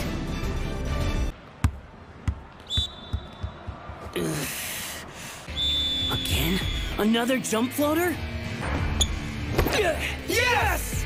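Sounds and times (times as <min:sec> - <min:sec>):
volleyball bouncing on floor: 0:01.6 - 0:04.1.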